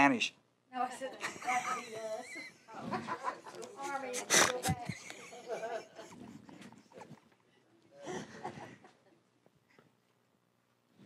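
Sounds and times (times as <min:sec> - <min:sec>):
faint voices of people talking: 0:00.8 - 0:09.2.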